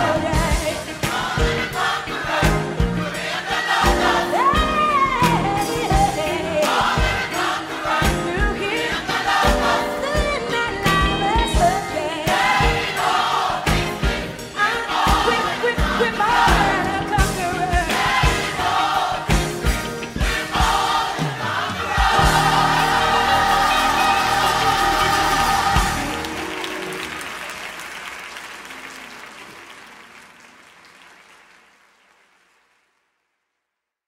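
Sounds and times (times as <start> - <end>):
gospel choir singing: 0.0 - 27.1
drum hits: 15.0 - 26.3.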